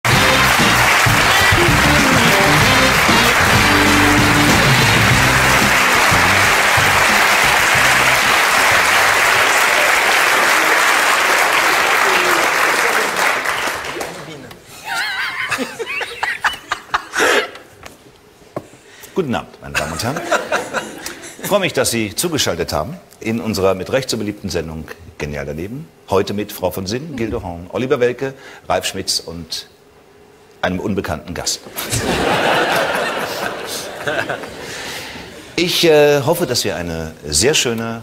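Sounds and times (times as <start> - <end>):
music: 0.0 - 9.6
audience applauding: 0.0 - 14.4, 31.9 - 35.1.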